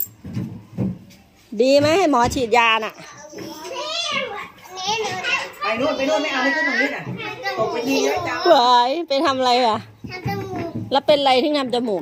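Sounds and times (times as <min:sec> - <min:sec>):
children chattering and calling out: 0:02.9 - 0:09.2, 0:09.8 - 0:11.1.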